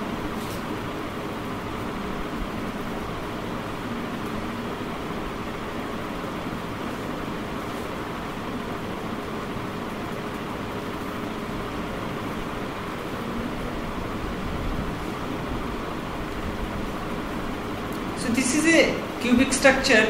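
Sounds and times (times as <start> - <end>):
constant even hiss: 0.0 - 20.0.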